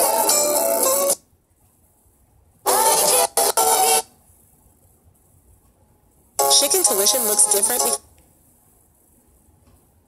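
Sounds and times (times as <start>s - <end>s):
recorded music playing: 0.0s - 1.2s, 2.7s - 4.1s, 6.4s - 8.1s.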